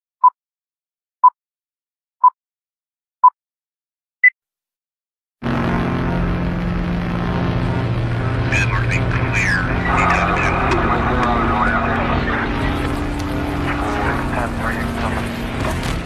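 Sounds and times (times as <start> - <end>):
low engine drone: 5.4 - 16.0
indistinct voices: 8.4 - 16.0.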